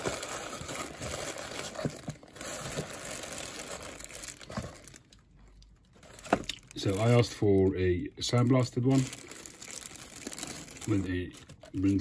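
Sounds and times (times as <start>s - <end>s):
plastic bag crinkling: 0.0s - 7.4s, 8.4s - 12.0s.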